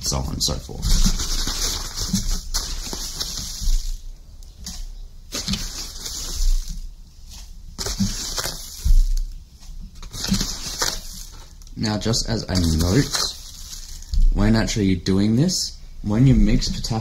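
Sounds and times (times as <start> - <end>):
granules scooped and poured: 0.1 - 14.5.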